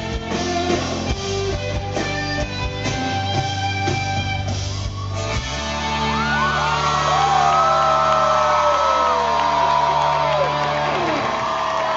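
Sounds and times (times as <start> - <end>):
rock band holding a chord: 0.0 - 8.4
crowd whooping and cheering: 4.7 - 11.9.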